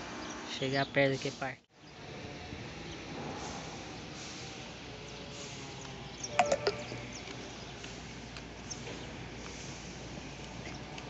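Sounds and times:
sharp clicks and short chirps: 6.3s - 7.4s.

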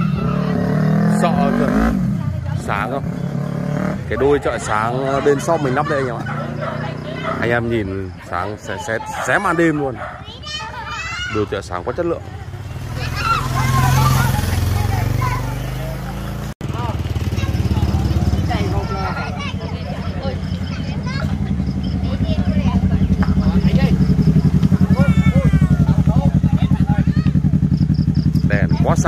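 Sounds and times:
motorcycle engine running: 0.0s - 29.0s
voices of onlookers: 0.0s - 29.0s.

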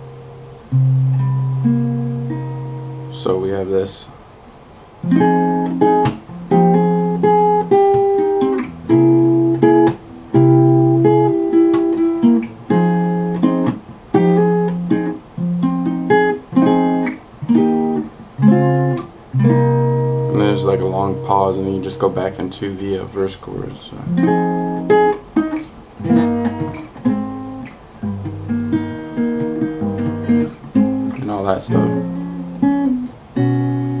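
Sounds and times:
acoustic guitar chords: 0.0s - 4.2s, 4.9s - 34.0s.

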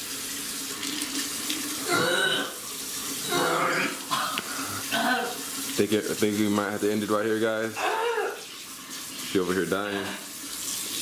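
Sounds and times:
tap water running into sink: 0.0s - 11.0s
woman retching: 1.8s - 2.6s, 3.2s - 5.4s.

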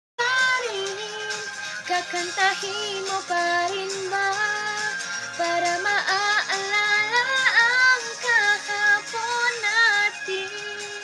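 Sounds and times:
backing track music: 0.2s - 11.0s
woman singing pop melody: 0.2s - 11.0s.

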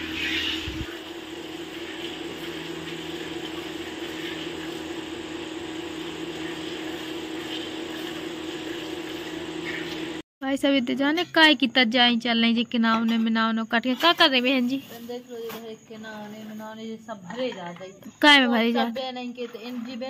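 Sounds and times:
low electrical hum: 0.0s - 15.2s.

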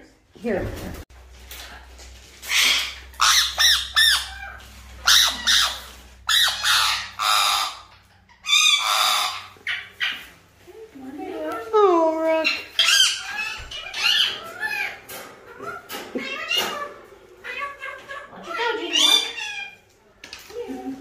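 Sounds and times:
parrot squawking harshly: 2.4s - 10.2s, 12.4s - 19.8s.

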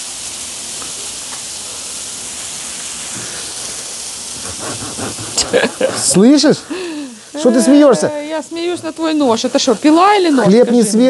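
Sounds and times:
potatoes and onions sizzling: 0.0s - 11.0s.

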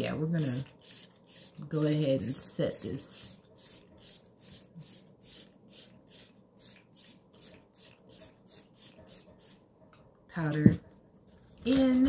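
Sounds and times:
spray bottle mist hisses: 0.5s - 1.8s, 2.8s - 9.6s.

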